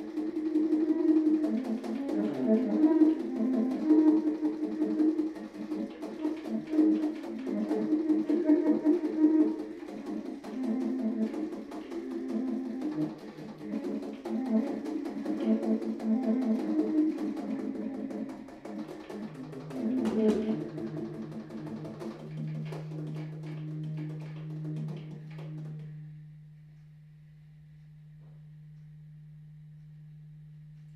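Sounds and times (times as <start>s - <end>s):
baritone saxophone playing: 0.0s - 18.2s, 19.2s - 26.2s.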